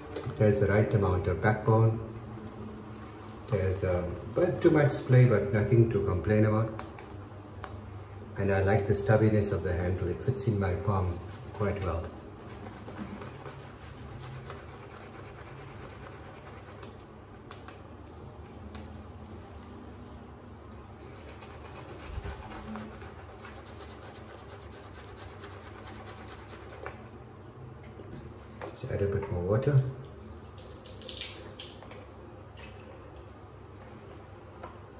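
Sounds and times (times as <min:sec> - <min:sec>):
shaving brush lathering face: 0:11.0 - 0:17.8, 0:19.0 - 0:27.1.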